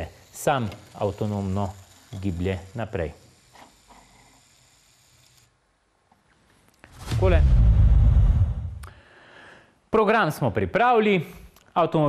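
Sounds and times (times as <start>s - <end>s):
loud sound: 6.9s - 8.9s.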